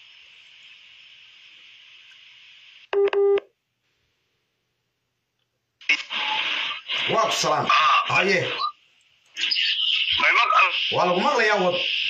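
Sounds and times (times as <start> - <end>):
steady hiss: 0.0 - 2.9, 5.9 - 12.0.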